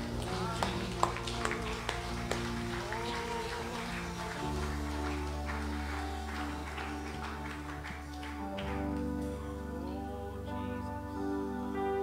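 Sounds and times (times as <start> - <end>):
held keyboard chords: 0.0 - 12.0.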